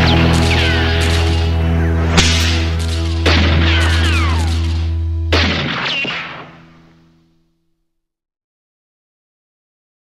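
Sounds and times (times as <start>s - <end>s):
steady low drone: 0.0s - 7.2s
ricochet whines: 2.1s - 7.0s
gunshot crack: 2.2s - 6.9s.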